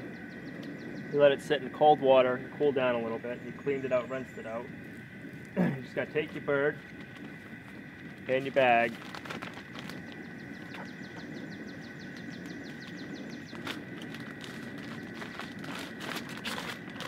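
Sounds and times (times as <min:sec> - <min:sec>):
steady high whine: 0:00.0 - 0:17.0
plastic bag rustling and crinkling: 0:06.3 - 0:10.9, 0:12.6 - 0:17.0.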